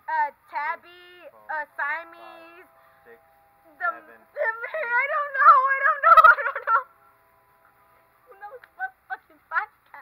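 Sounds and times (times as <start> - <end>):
woman's high-pitched squealing laugh: 5.7 - 6.9.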